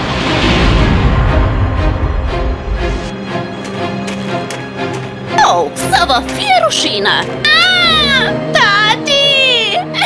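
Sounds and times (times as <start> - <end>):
soft background music: 3.1 - 10.0
girl crying out and sobbing: 7.4 - 10.0.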